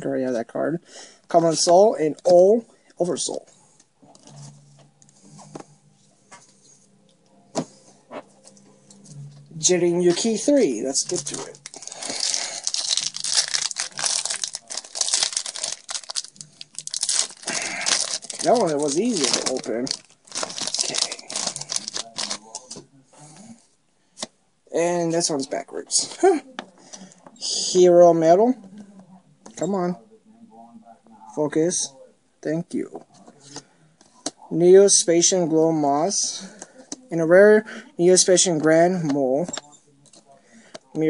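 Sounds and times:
faint low hum: 0:02.1 - 0:24.7
cards and foil pack rustling: 0:10.1 - 0:22.8.

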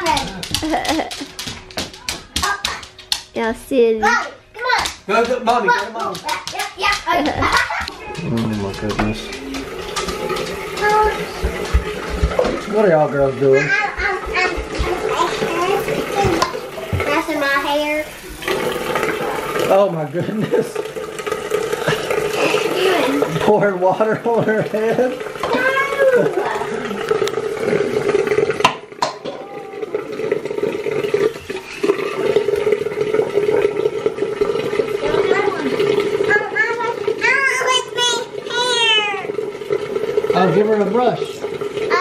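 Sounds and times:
sink tap running: 0:00.0 - 0:42.0
water pouring into plastic cup: 0:05.1 - 0:42.0
children's voices: 0:10.7 - 0:11.4, 0:13.6 - 0:18.2, 0:22.3 - 0:23.3, 0:25.4 - 0:26.9, 0:35.0 - 0:39.4, 0:41.8 - 0:42.0.

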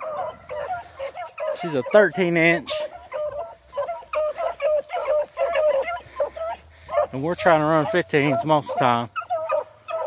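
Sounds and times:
hounds barking: 0:00.0 - 0:10.0.

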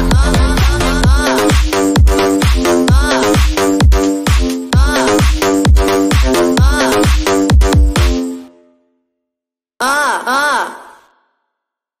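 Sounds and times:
voice sample crying out: 0:09.8 - 0:11.2.

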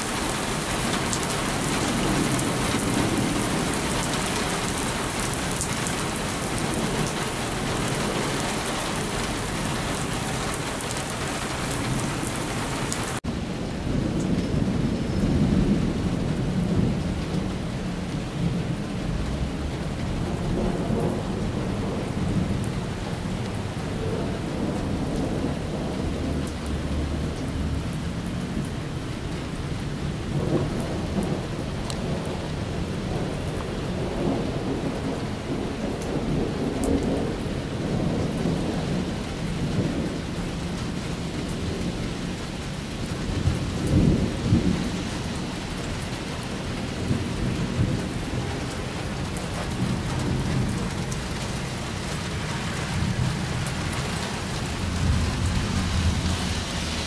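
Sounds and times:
thunder rumbling: 0:00.0 - 0:29.0, 0:29.6 - 0:57.0
heavy rain on wet pavement: 0:00.0 - 0:57.0.

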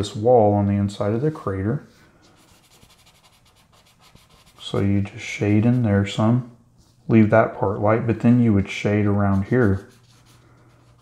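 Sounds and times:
pencil scratching on paper: 0:02.3 - 0:04.8, 0:09.2 - 0:11.0.

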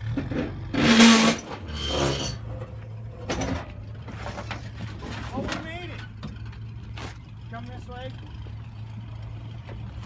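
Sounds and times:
truck engine running at low revs: 0:00.0 - 0:10.0.

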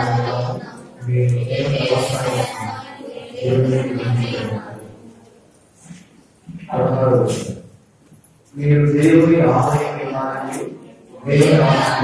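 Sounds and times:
man chanting through speakers: 0:00.0 - 0:05.1, 0:06.6 - 0:07.7, 0:08.5 - 0:12.0.

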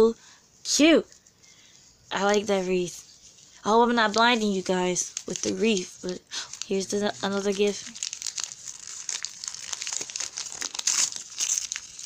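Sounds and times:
paper crinkling and tearing: 0:02.2 - 0:12.0.

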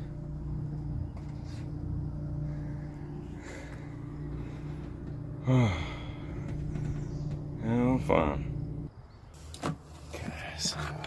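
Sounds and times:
electric motor humming: 0:00.0 - 0:08.9.

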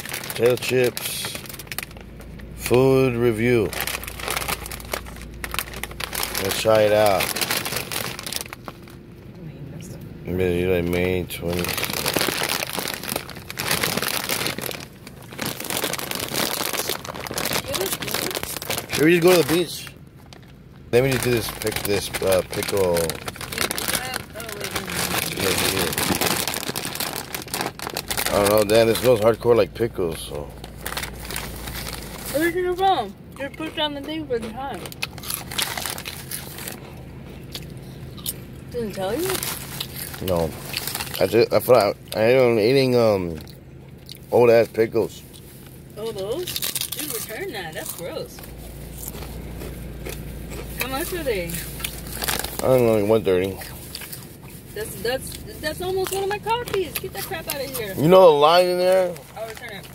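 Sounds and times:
plastic chip bag crinkling: 0:00.0 - 0:09.0, 0:11.0 - 0:32.8, 0:34.7 - 0:59.9.

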